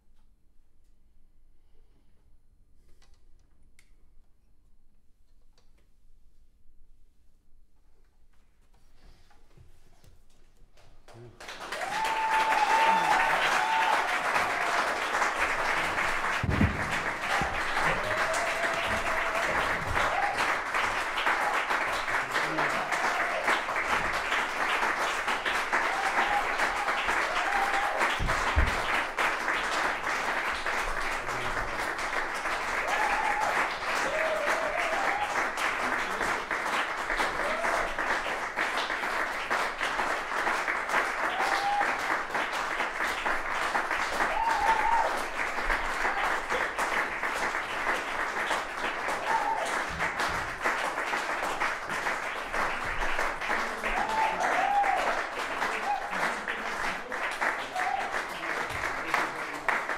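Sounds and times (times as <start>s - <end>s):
audience applauding: 10.8s - 59.9s.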